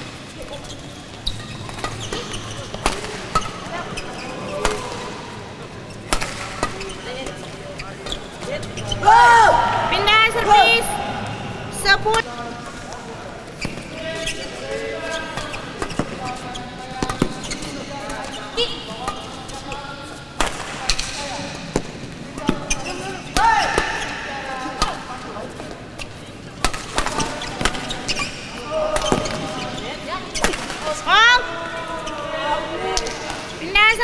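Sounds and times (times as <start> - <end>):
voices in a sports hall: 0.0 - 34.0
rackets striking shuttlecock: 6.1 - 6.9, 20.4 - 22.7, 26.6 - 29.4.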